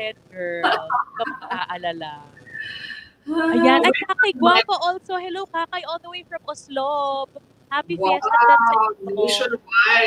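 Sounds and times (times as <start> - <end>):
woman talking: 0.0 - 9.6
high held vocal sound: 0.4 - 6.0, 7.8 - 10.0
woman laughing: 0.5 - 2.0.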